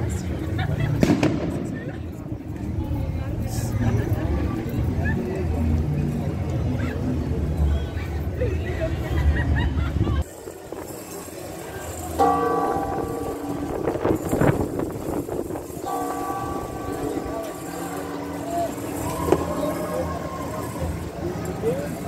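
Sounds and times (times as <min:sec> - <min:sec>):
church bells pealing: 0:12.1 - 0:22.0.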